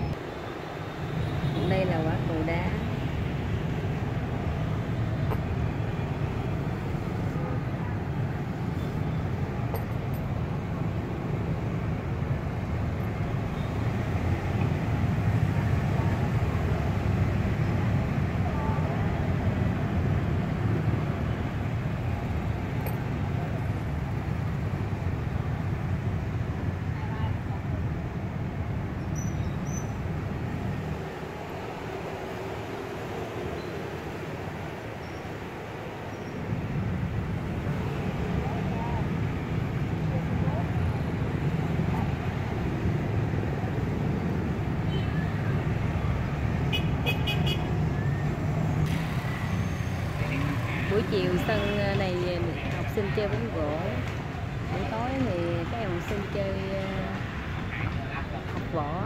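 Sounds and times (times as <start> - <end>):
road traffic rumbling: 0.0 - 59.0.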